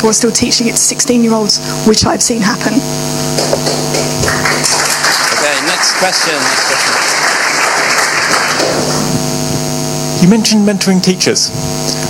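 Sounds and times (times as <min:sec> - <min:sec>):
electrical mains hum: 0:00.0 - 0:12.0
audience applause: 0:03.4 - 0:09.2.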